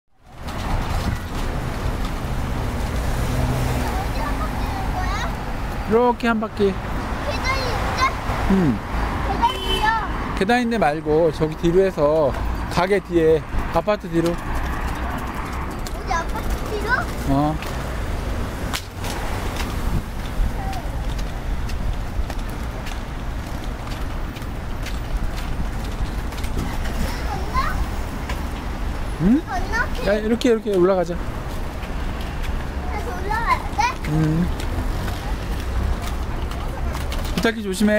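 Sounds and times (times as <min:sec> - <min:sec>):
road traffic passing: 0:00.1 - 0:37.9
vehicle engine hum: 0:00.2 - 0:37.9
scooter rolling over pavers: 0:14.1 - 0:17.9.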